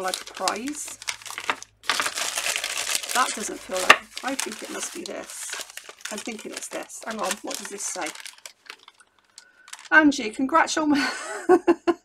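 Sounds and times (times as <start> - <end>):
paper crinkling and rustling: 0.0 - 10.0.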